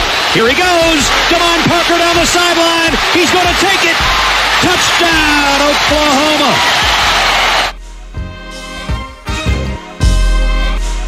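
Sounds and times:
stadium crowd noise: 0.0s - 7.8s
music with steady tones: 6.8s - 11.0s.

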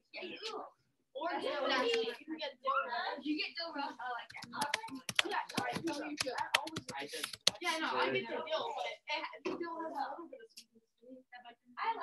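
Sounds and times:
voices talking softly: 0.0s - 12.0s.

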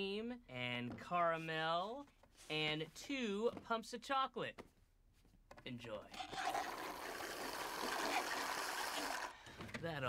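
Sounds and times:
slurping through straws: 6.2s - 9.4s.

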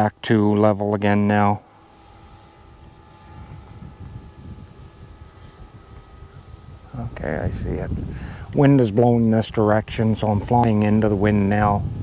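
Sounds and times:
faint high hum: 0.0s - 12.0s
wind buffeting microphone: 1.8s - 12.0s.

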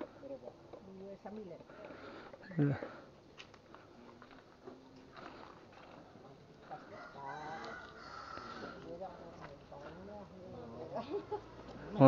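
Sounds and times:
rooster crowing: 6.8s - 8.8s.

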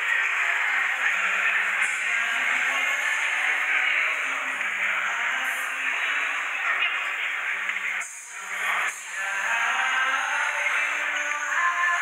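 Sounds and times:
dance music: 0.0s - 12.0s.

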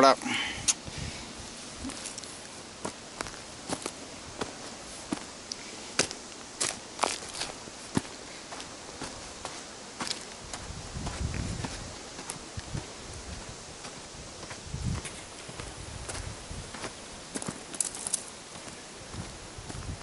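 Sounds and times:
footsteps on dry leaves: 1.4s - 20.0s
twigs snapping and crackling: 5.4s - 7.6s, 17.4s - 18.3s.

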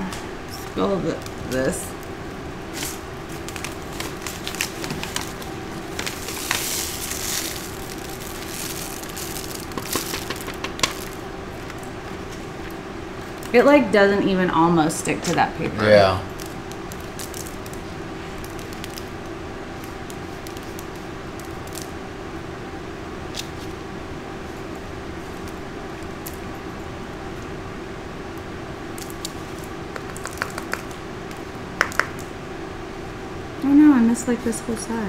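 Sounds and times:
steady low hum: 0.0s - 35.0s
coaster clicks and taps on paper: 30.0s - 30.9s, 31.8s - 32.2s.

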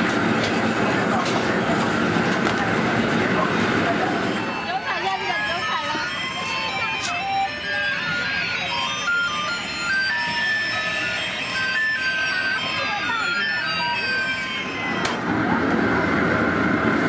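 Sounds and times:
electronic beeping jingle: 4.0s - 16.3s.

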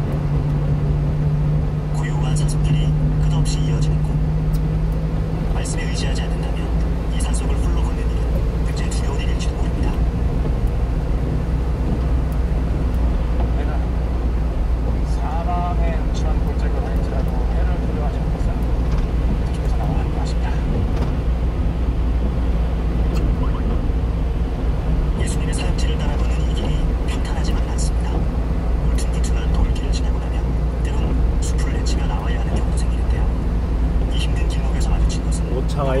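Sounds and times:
truck engine and tyres droning: 0.0s - 36.0s.

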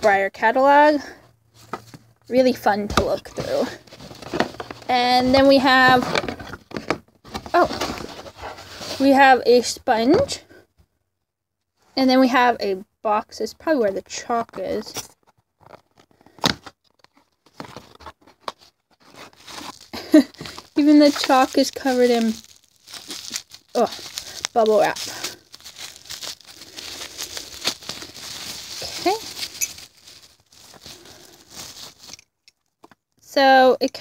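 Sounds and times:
bubble wrap crinkling: 1.6s - 9.3s, 16.9s - 32.5s
cardboard box being opened: 2.9s - 9.0s, 15.6s - 32.1s.

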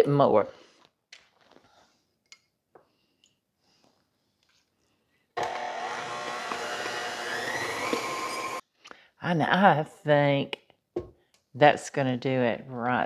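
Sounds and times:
electric stand mixer running: 5.4s - 8.6s.

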